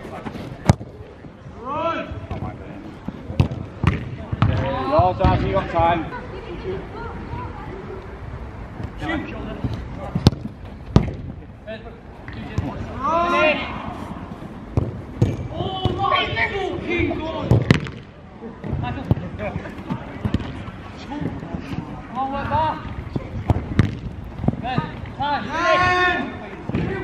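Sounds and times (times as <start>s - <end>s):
football being kicked: 3.3s - 5.5s, 10.2s - 11.3s, 14.7s - 16.1s, 23.1s - 25.0s
players shouting: 12.4s - 14.4s, 15.3s - 17.6s, 24.6s - 27.0s.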